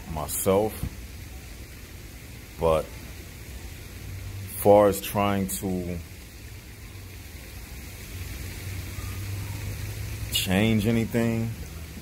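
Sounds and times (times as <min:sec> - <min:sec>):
steady hiss: 0:00.0 - 0:12.0.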